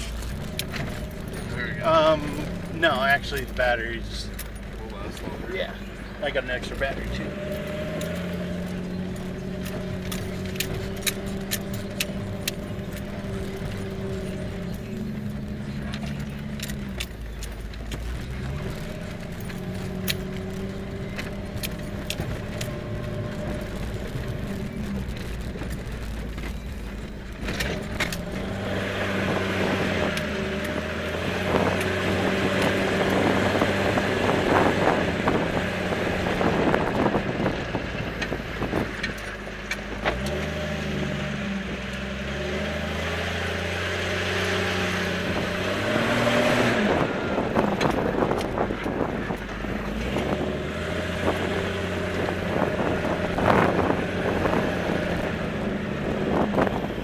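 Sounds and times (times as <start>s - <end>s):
tyres rushing on dirt: 0.0s - 57.0s
vehicle engine running under load: 0.0s - 57.0s.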